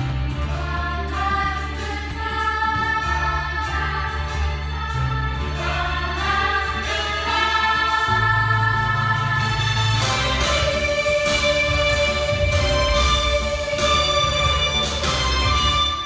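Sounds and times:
accompaniment with low bass line: 0:00.0 - 0:16.0
girls' choir singing: 0:00.1 - 0:16.0.

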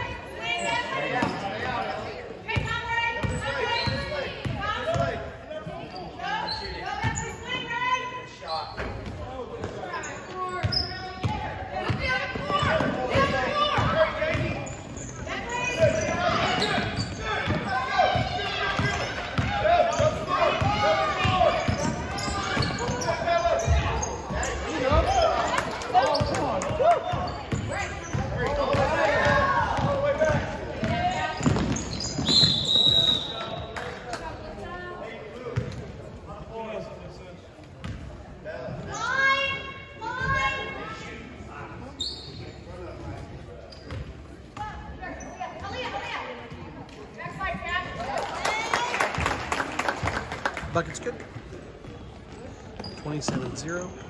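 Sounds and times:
voices calling out echoing: 0:00.0 - 0:35.4
high steady whistle: 0:32.2 - 0:33.6.

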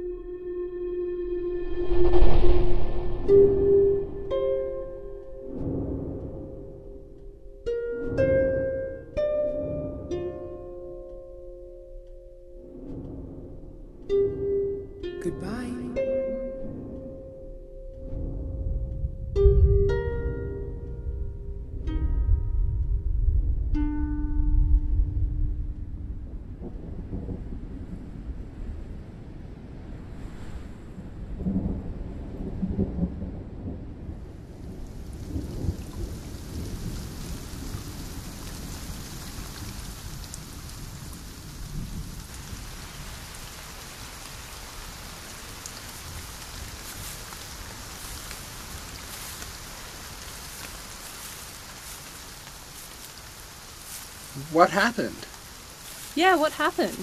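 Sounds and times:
rain: 0:00.0 - 0:57.0
thunder rumbling: 0:01.1 - 0:07.2, 0:24.4 - 0:52.7.

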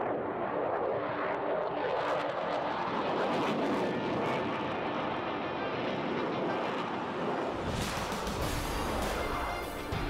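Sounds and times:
fighter jet roar: 0:00.1 - 0:10.0.

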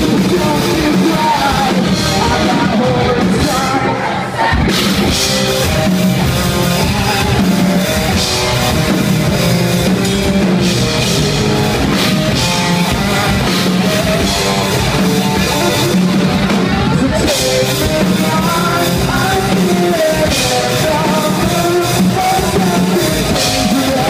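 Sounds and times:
distorted electric guitar: 0:00.0 - 0:24.0
pounding drum kit: 0:00.0 - 0:24.0.

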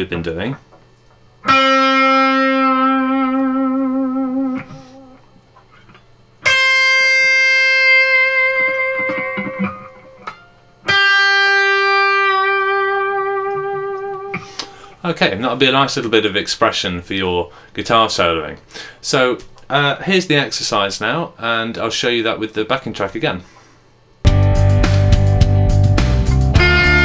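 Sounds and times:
electric guitar notes with vibrato: 0:01.4 - 0:05.2, 0:06.4 - 0:14.6, 0:24.3 - 0:27.0.

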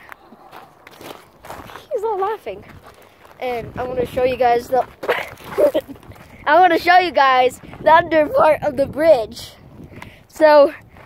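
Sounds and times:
footsteps on dirt path: 0:00.0 - 0:11.0.

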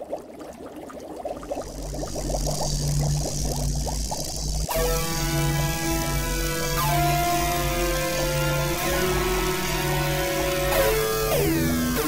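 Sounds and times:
steady low hum: 0:01.5 - 0:12.0.

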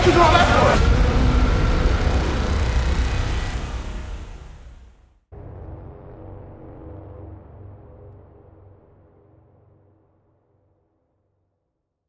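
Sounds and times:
deep noisy rumble: 0:00.0 - 0:10.4.

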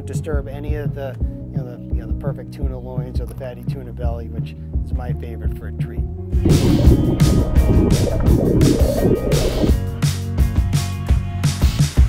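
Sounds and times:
bubbling rushing water: 0:06.4 - 0:09.8
music with steady beat: 0:06.4 - 0:09.8.

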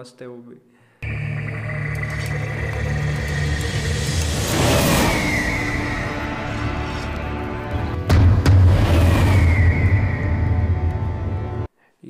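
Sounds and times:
deep rumbling drone: 0:01.0 - 0:11.7.

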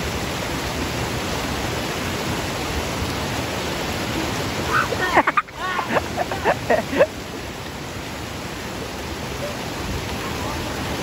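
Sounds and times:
water cascading over rocks: 0:00.0 - 0:11.0.

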